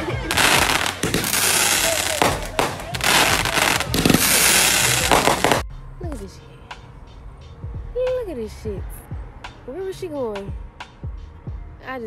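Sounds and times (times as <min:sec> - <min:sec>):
fireworks bangs: 0:00.2 - 0:05.6.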